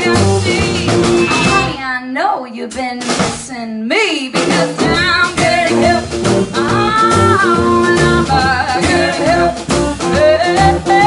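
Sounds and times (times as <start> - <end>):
blues band playing: 0.0 - 1.9, 4.3 - 11.0
person singing: 3.9 - 11.0.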